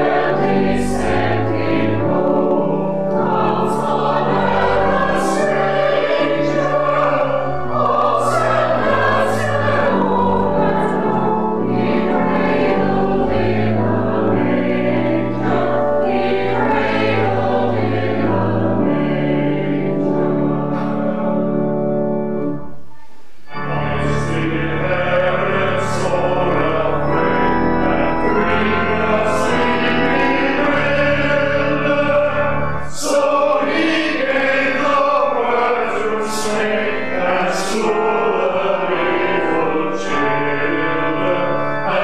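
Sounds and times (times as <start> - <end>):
congregation singing a carol: 0.0 - 22.7, 23.4 - 42.0
organ holding bass notes: 0.0 - 22.8, 23.4 - 42.0.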